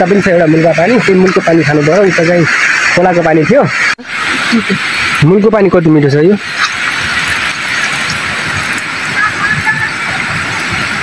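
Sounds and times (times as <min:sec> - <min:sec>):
water trickling and splashing: 0:00.0 - 0:11.0.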